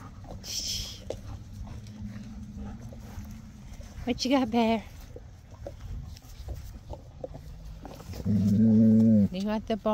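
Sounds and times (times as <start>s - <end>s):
dog growling low: 7.5s - 9.4s.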